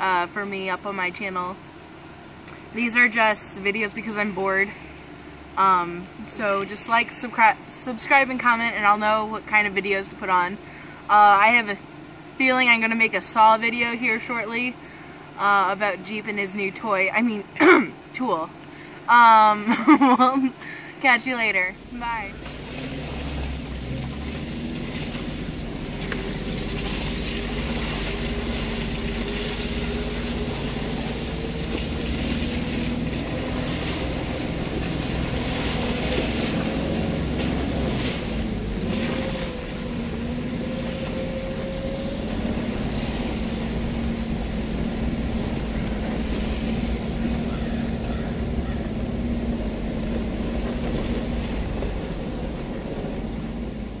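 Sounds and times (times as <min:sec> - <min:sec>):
vehicle engine running: 0:00.0 - 0:54.0
low rumble: 0:21.6 - 0:54.0.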